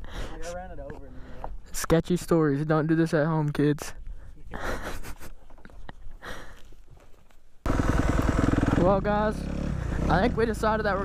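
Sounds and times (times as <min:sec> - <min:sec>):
dirt bike engine running: 0:07.6 - 0:11.0.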